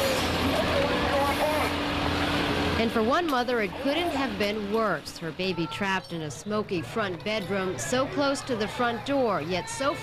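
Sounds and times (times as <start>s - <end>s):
faint voices: 3.6s - 10.0s.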